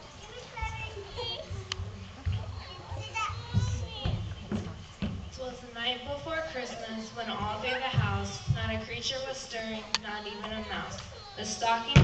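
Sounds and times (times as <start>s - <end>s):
young children chattering: 0.0s - 12.0s
bumps and rustling: 0.4s - 11.2s.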